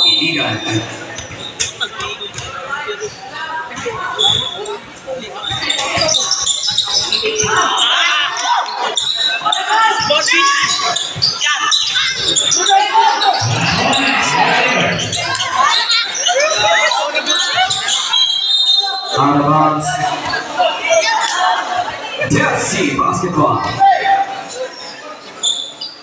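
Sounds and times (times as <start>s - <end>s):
voices of players and spectators: 0.0s - 26.0s.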